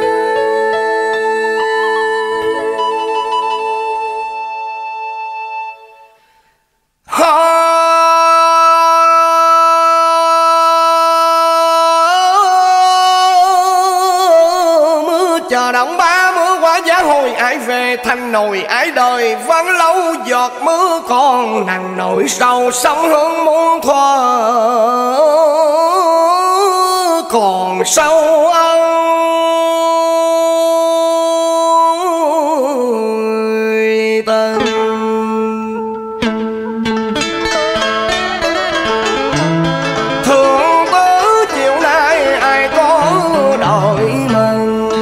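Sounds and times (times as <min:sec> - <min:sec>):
woman singing long vibrato note: 0:00.0 - 0:05.2
long steady sung note: 0:00.0 - 0:14.6.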